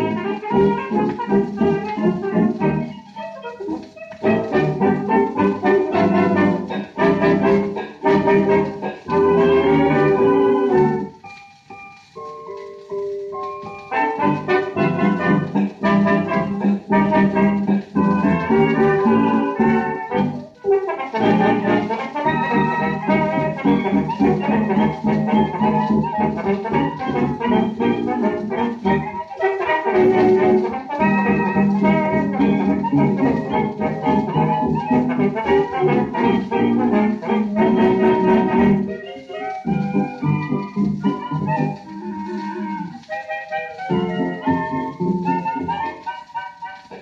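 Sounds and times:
dance band playing on old record: 0:00.0 - 0:47.0.

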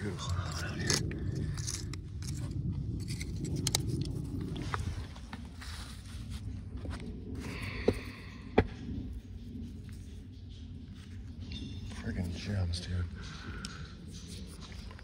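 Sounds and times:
metal tool scraping rock: 0:00.0 - 0:03.9
steady low rumble: 0:00.0 - 0:15.0.

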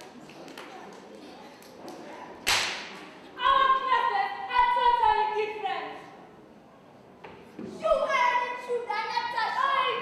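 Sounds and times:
faint hall background noise: 0:00.0 - 0:10.0
sharp hand slap: 0:01.6 - 0:03.1.

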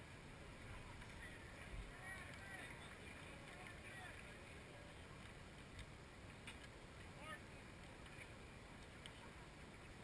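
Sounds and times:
faint distant voices: 0:00.0 - 0:10.0
outdoor background noise: 0:00.0 - 0:10.0.

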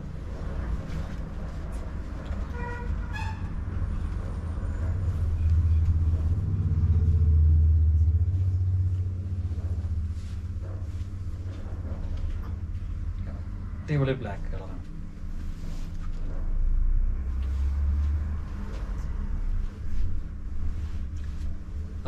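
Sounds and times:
road vehicle passing: 0:00.0 - 0:22.0.

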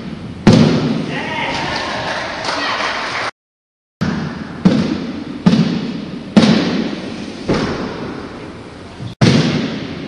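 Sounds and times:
stilts thudding on gym floor: 0:00.4 - 0:01.1, 0:04.0 - 0:08.2.

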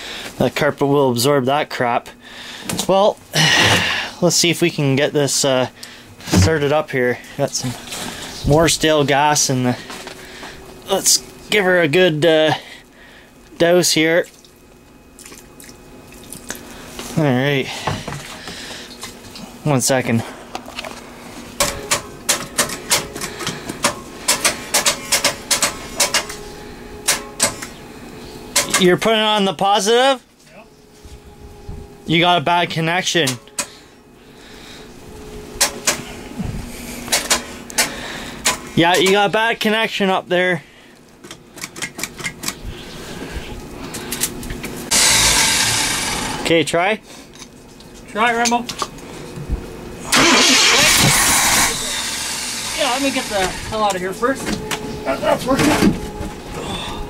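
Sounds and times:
gasoline trickling and splashing: 0:50.2 - 0:52.8.

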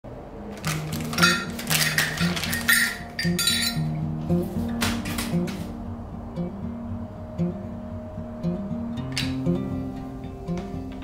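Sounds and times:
background music: 0:00.2 - 0:11.0
plastic zip pouch crinkling: 0:00.6 - 0:02.7
metal parts clinking: 0:00.6 - 0:03.8.

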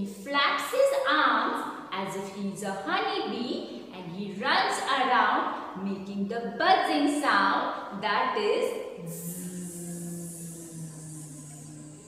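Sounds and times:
woman making buzzing zzz sound: 0:09.0 - 0:12.0.

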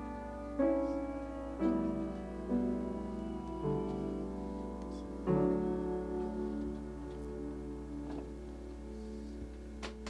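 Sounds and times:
upright piano notes ringing: 0:00.0 - 0:10.0.

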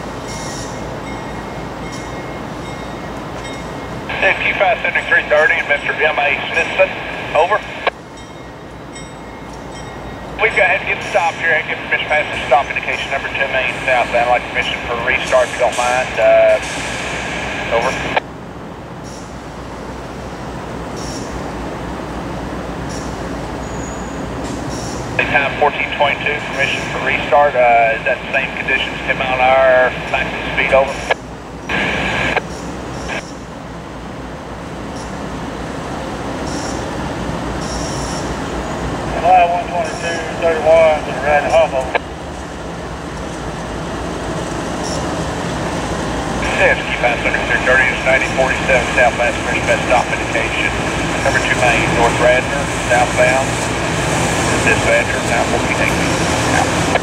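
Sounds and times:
diesel locomotives running: 0:00.0 - 0:57.0
radio scanner voice: 0:04.1 - 0:07.9, 0:10.4 - 0:18.2, 0:25.2 - 0:32.4, 0:39.1 - 0:42.0, 0:46.4 - 0:57.0.

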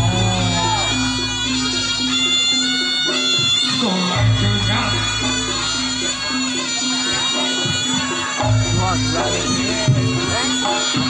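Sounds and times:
wind instrument playing long held notes: 0:00.0 - 0:11.0.

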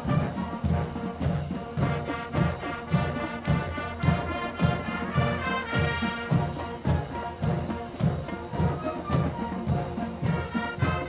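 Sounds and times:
marching band horn chords: 0:00.0 - 0:11.0
steady drum beat: 0:00.0 - 0:11.0.

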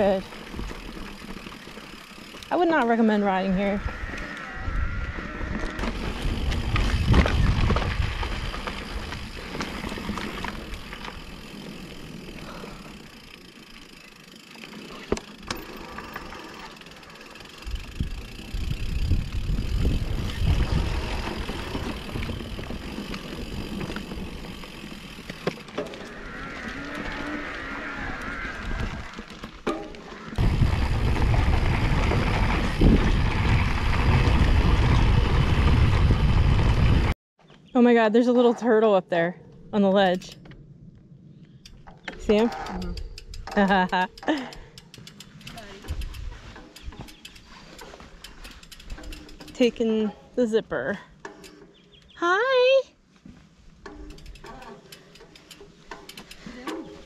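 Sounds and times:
bike knocking and rattling: 0:00.0 - 0:37.1, 0:41.5 - 0:52.6, 0:53.2 - 0:57.0
bike tyre noise: 0:00.0 - 0:37.2, 0:40.2 - 0:50.1, 0:51.2 - 0:57.0
wind rumble on microphone: 0:03.6 - 0:09.4, 0:17.6 - 0:24.7, 0:30.4 - 0:37.2.

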